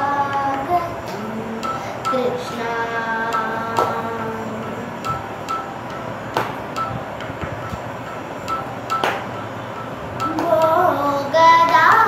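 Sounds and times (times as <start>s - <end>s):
child singing: 0.0s - 4.8s, 10.2s - 12.0s
sharp hand claps: 6.4s - 6.6s, 9.0s - 9.3s.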